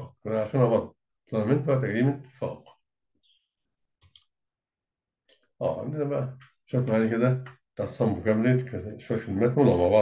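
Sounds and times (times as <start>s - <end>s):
man speaking: 0.0s - 2.8s, 5.6s - 10.0s
computer mouse clicks: 4.0s - 4.4s.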